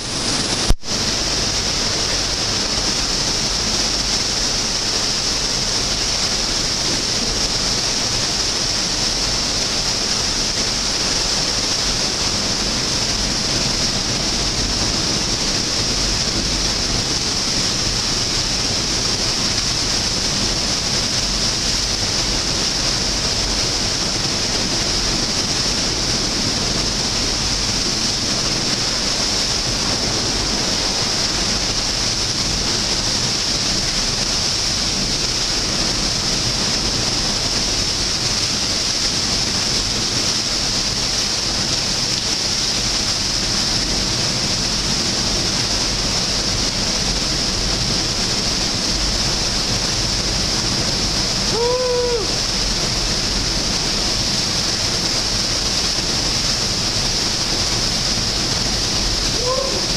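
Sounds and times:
waterfall roaring: 0.0 - 59.9.

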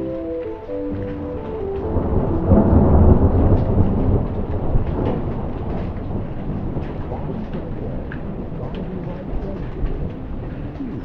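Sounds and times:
raindrops tapping on window: 0.0 - 11.0
steady rain: 0.0 - 11.0
thunder rumbling: 0.0 - 11.0.

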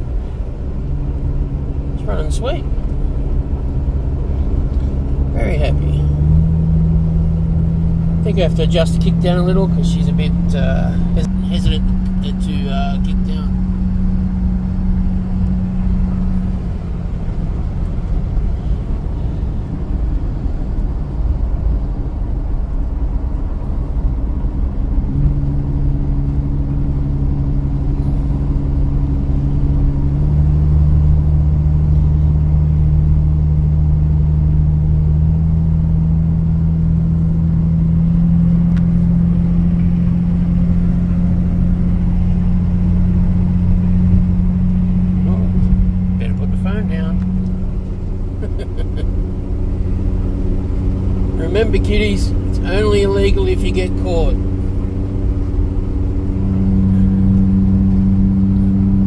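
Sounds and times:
car engine drone: 0.0 - 59.0
road noise: 0.0 - 59.0.

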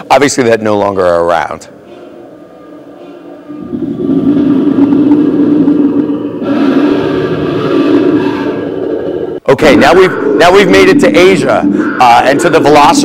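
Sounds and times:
dinosaur roar through loudspeaker: 3.6 - 13.0.

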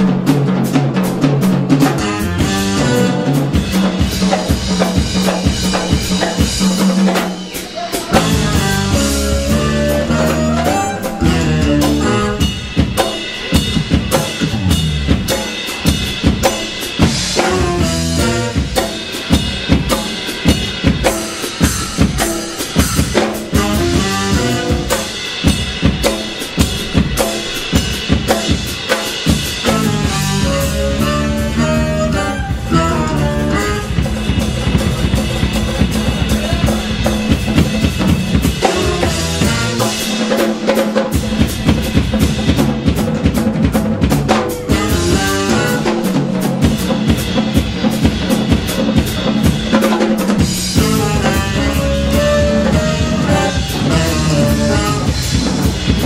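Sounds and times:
drum kit snare and rimshots: 0.0 - 56.0
jazz fusion band playing: 0.0 - 56.0.

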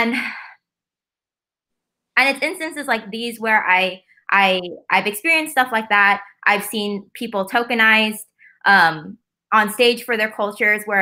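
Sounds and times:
woman speaking: 0.0 - 0.5, 2.2 - 11.0.

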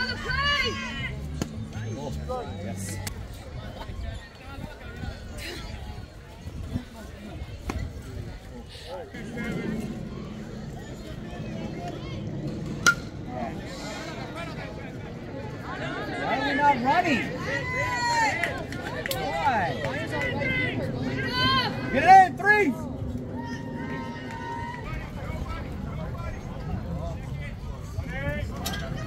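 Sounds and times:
faint spectator chatter: 0.0 - 29.0
steady low rumble: 5.7 - 16.3, 17.3 - 29.0
metal bat hitting ball: 12.8 - 13.1.

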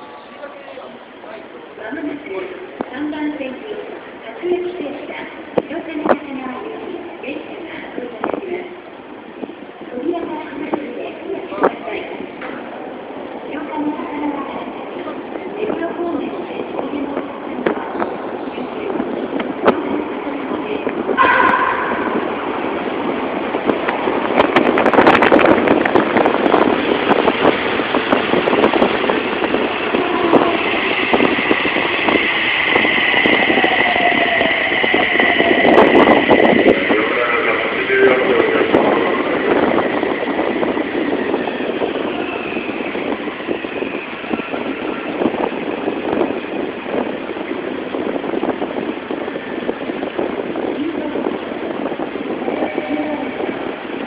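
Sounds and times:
high train whine: 0.0 - 54.0
train wheels on rails: 0.0 - 54.0.

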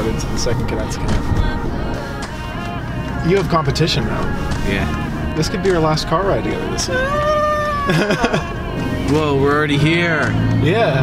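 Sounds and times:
background music: 0.0 - 11.0
person singing high note: 6.9 - 8.1.

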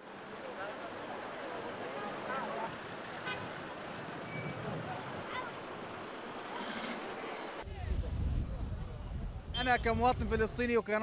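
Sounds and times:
chatter of passers-by: 0.0 - 11.0
traffic noise: 0.0 - 11.0
car horn toot: 3.2 - 3.5, 9.5 - 10.0.

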